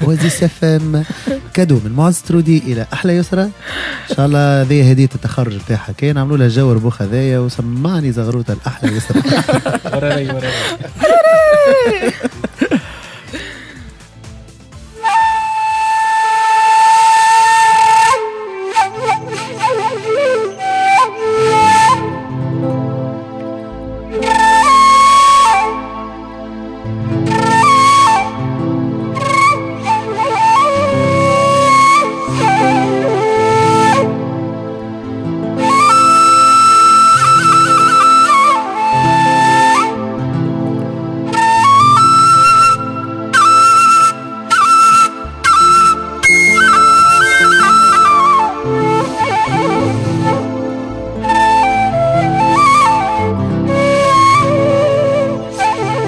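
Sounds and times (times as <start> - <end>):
accompaniment with bass line: 0.0 - 16.0
wind instrument melody: 8.9 - 13.5, 14.8 - 56.0.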